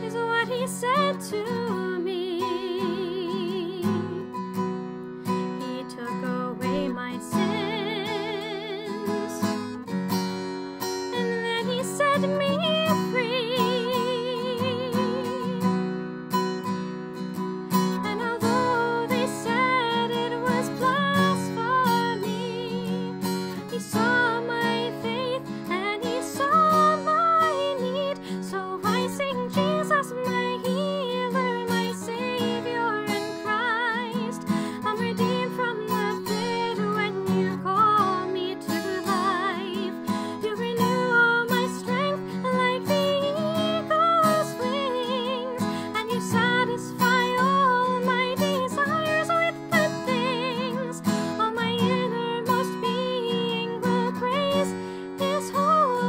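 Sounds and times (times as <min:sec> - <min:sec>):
woman singing with vibrato: 0:00.0 - 0:04.4, 0:05.4 - 0:09.8, 0:11.1 - 0:15.8, 0:17.9 - 0:56.0
strummed acoustic guitar: 0:00.0 - 0:56.0.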